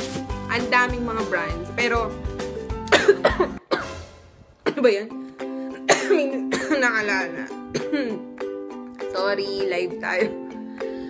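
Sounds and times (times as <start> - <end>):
soft background music: 0.0 - 11.0
woman coughing: 2.9 - 4.0, 4.6 - 5.0, 5.8 - 6.9, 7.7 - 8.3.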